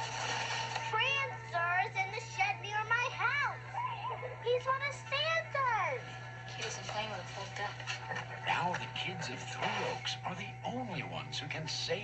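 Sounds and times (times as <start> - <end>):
young girl speaking: 0.9 - 3.6, 4.4 - 6.1.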